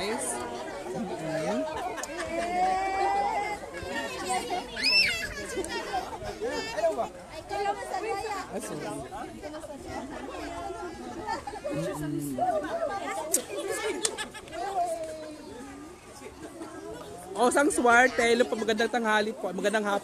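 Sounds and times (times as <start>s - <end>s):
indistinct chatter: 0.0s - 20.0s.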